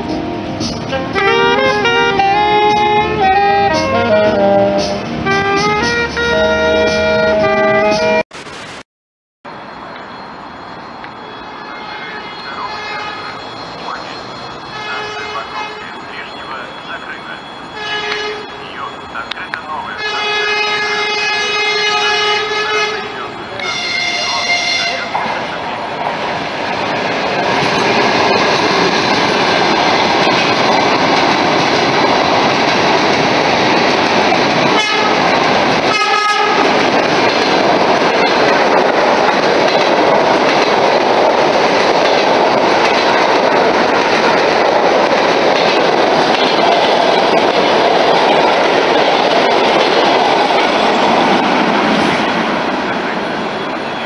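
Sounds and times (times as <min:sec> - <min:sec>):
electric train passing: 0:00.0 - 0:08.8, 0:09.5 - 0:54.0
train horn: 0:00.9 - 0:08.2, 0:11.5 - 0:13.3, 0:14.7 - 0:16.0, 0:17.8 - 0:18.5, 0:20.0 - 0:25.1, 0:34.7 - 0:35.3, 0:35.9 - 0:36.8.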